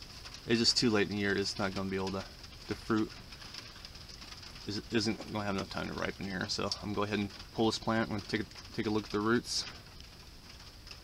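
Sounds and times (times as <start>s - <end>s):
faint background noise: 0.0s - 11.0s
man speaking: 4.7s - 9.8s.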